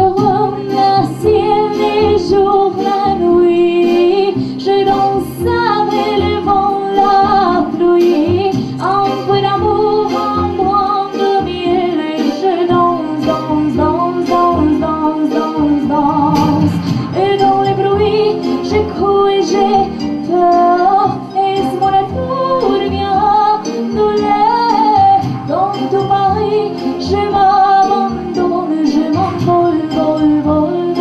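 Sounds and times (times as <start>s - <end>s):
instrumental backing with steady beat: 0.0s - 31.0s
young woman singing: 0.0s - 31.0s.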